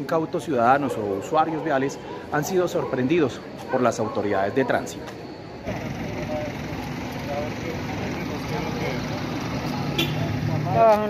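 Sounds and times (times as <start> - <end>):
indistinct voices: 1.4 - 11.0
vehicle engine running: 5.7 - 10.9.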